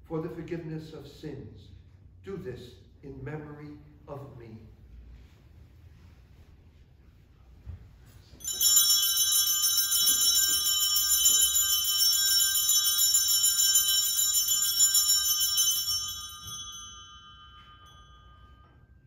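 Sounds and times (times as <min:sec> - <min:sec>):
altar bells jingling: 0:08.3 - 0:19.0.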